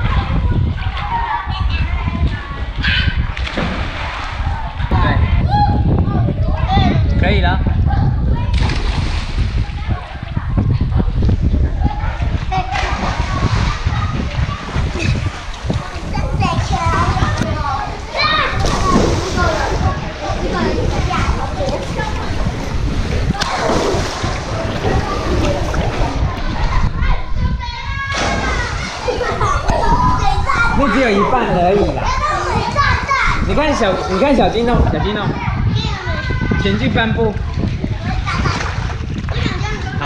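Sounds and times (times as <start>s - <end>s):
children calling and playing: 0.0s - 40.0s
splash into pool: 3.3s - 4.5s, 8.5s - 9.7s, 23.3s - 26.2s, 28.1s - 29.9s
churning water: 8.4s - 40.0s.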